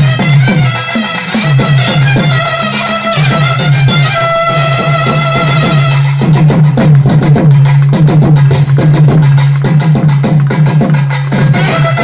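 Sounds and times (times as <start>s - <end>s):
barrel drums played fast: 0.0s - 12.0s.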